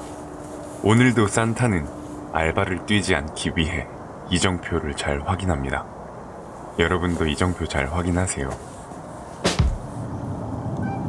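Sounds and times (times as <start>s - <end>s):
low thud: 9.4s - 9.9s.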